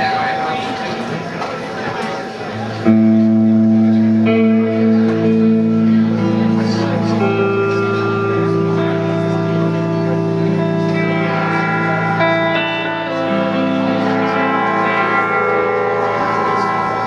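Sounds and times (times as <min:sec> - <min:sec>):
electric guitars sustained notes: 0:00.0 - 0:17.0.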